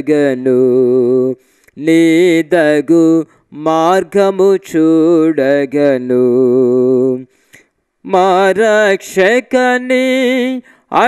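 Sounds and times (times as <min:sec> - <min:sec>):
man singing unaccompanied: 0:00.0 - 0:07.3, 0:08.0 - 0:11.0
singer breathing: 0:01.4 - 0:01.8, 0:03.2 - 0:03.5, 0:07.3 - 0:07.8, 0:10.6 - 0:10.9.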